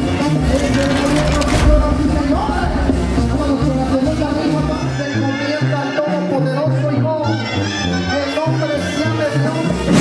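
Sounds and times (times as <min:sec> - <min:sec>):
latin music with bass line: 0:00.0 - 0:10.0.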